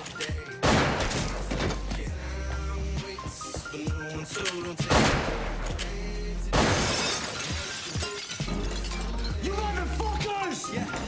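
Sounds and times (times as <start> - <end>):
background music: 0.0 - 11.0
gunfire: 0.6 - 1.5, 4.9 - 5.6, 6.5 - 7.0
glass shattering: 6.5 - 10.9.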